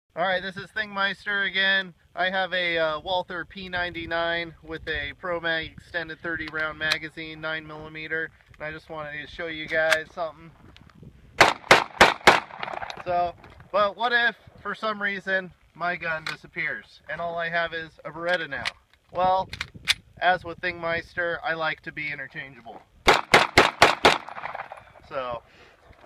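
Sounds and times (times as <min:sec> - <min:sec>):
pistol shots with echo: 0:11.4 - 0:13.0, 0:23.1 - 0:24.9.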